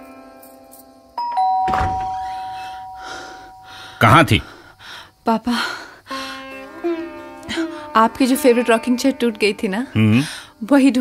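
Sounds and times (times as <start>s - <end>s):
two-note doorbell chime: 1.2s - 3.8s
background music: 6.0s - 11.0s.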